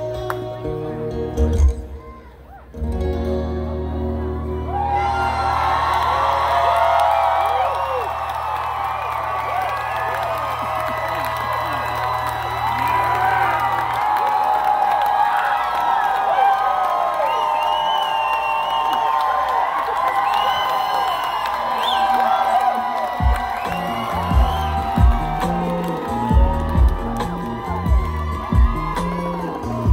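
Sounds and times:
crowd cheering and whooping: 1.9 - 29.9
heavy low beats: 23.2 - 29.9.

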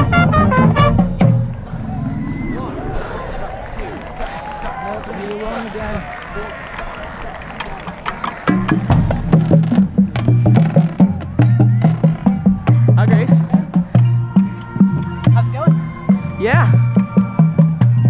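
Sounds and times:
voices: 1.5 - 8.9
marching drumline playing: 7.7 - 18.0.

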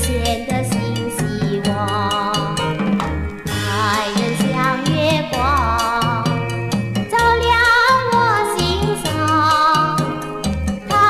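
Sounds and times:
person singing with vibrato: 0.0 - 2.9, 3.5 - 11.0
drums percussion and bass beat: 0.0 - 11.0.

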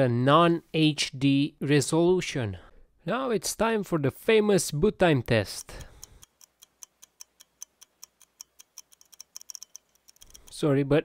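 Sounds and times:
clock ticking: 5.2 - 10.6.

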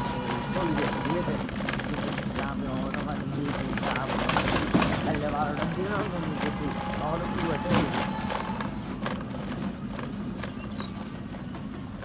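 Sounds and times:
footsteps on dirt road: 0.0 - 12.0.

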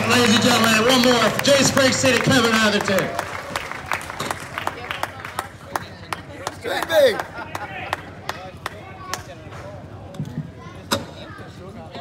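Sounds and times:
hand claps: 0.0 - 9.3.

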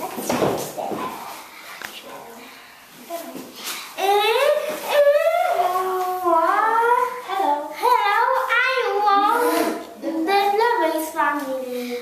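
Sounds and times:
child's sing-song voice: 4.0 - 12.0.

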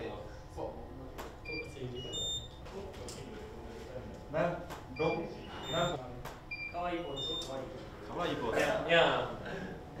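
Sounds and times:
short high-pitched electronic beeps: 5.0 - 7.5.

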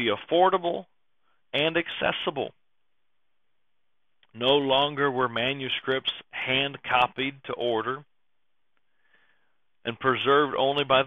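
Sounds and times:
man speaking: 0.0 - 2.6, 4.2 - 8.2, 9.8 - 11.0
soft breath drawn in: 8.8 - 9.7.

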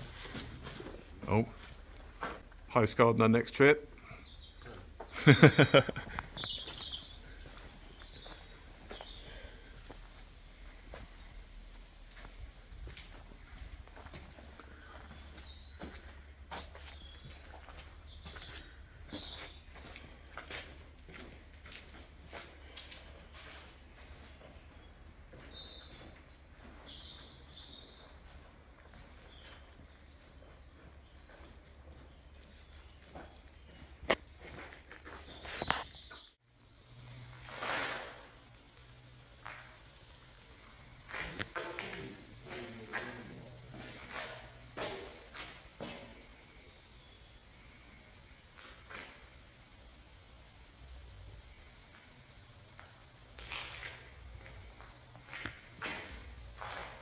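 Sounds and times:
birds chirping: 0.9 - 23.2, 23.9 - 37.3.

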